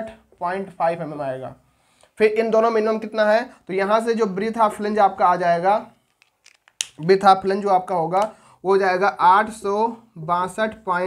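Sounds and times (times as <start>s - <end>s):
man talking: 0.0s - 1.6s, 2.2s - 5.9s, 7.0s - 11.0s.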